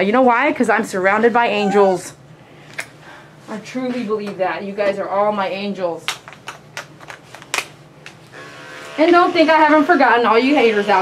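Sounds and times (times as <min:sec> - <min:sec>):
electric clippers humming: 0:08.2 - 0:11.0.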